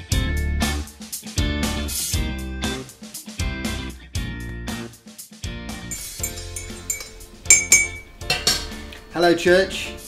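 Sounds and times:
background music: 1.6 - 10.0
teaspoon clinking in ceramic mug: 5.9 - 8.7.

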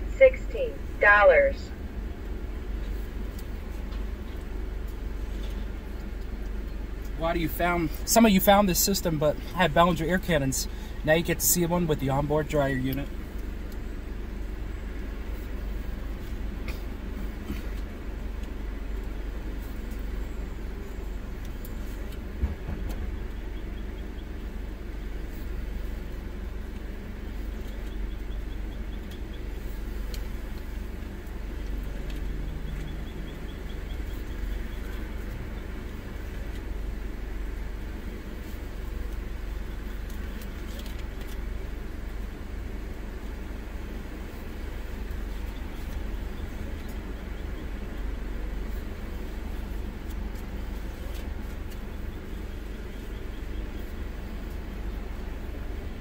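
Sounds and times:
car engine idling: 0.0 - 56.0.

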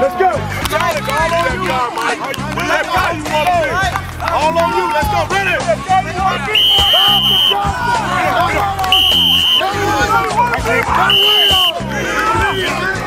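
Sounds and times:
voices: 0.0 - 13.0
music with bass beat: 0.6 - 13.0
coach's whistle blast: 6.5 - 7.7, 8.9 - 9.8, 11.0 - 11.8.

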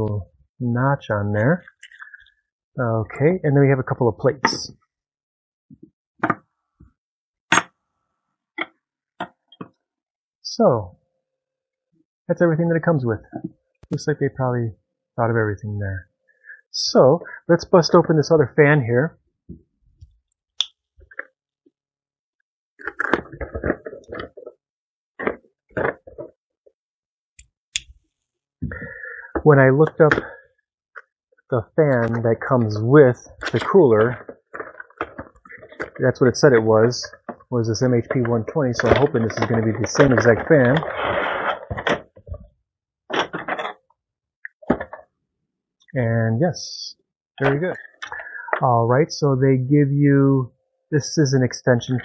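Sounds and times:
plastic clicks and knocks: 5.7 - 6.9, 43.1 - 43.8, 44.5 - 45.1
plastic scraping out of cardboard box: 38.8 - 42.2.

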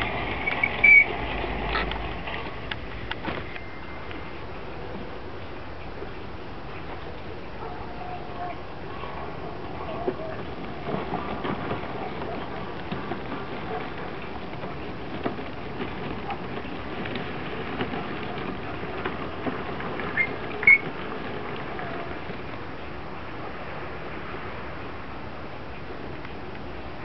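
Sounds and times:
tracks clicking and rattling: 0.0 - 24.9.

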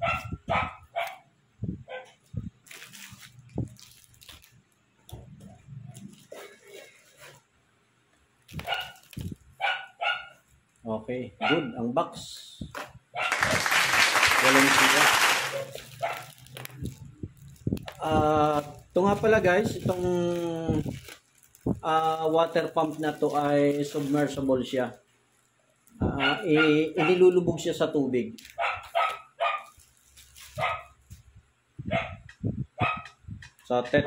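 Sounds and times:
dog barking: 0.0 - 1.2, 1.9 - 2.2, 8.6 - 9.0, 9.6 - 10.4, 11.4 - 11.8, 13.2 - 13.6, 16.0 - 16.4, 26.0 - 27.2, 28.6 - 29.8, 30.6 - 31.0, 31.9 - 32.2, 32.8 - 33.2
packaging rustling: 2.2 - 7.5, 8.4 - 9.6, 12.8 - 25.0, 28.3 - 31.3.

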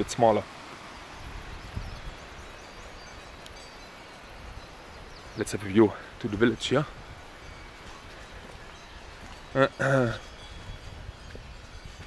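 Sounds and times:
mountain stream rushing: 0.0 - 12.0.

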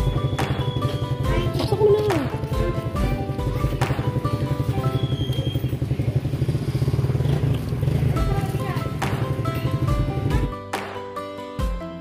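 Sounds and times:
small engine idling: 0.0 - 10.5.

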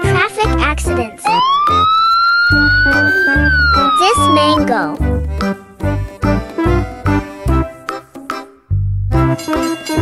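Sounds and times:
children's background music: 0.0 - 10.0
siren-like rising tone: 1.3 - 4.6.

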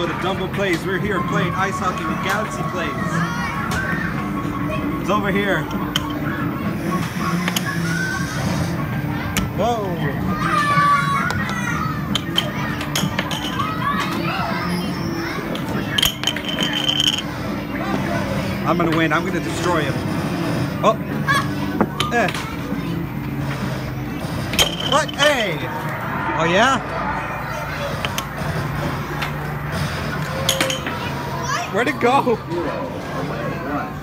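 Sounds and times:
arcade noise: 0.0 - 34.0
air hockey puck clack: 11.3 - 14.2, 28.0 - 28.5.

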